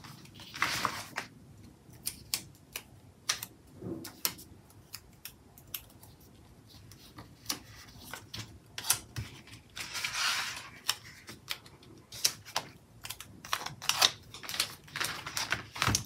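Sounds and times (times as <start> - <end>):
paper rustling: 0.0 - 1.3, 6.1 - 16.0.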